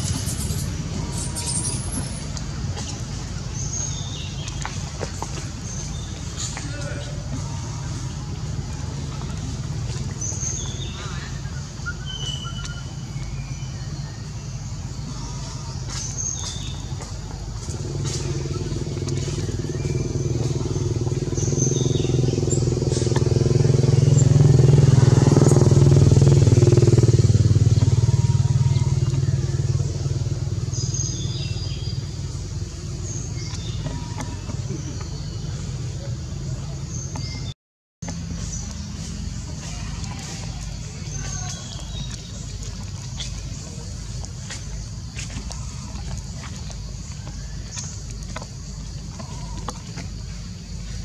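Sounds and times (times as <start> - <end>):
engine droning: 0.0 - 51.0
low outdoor rumble: 0.0 - 51.0.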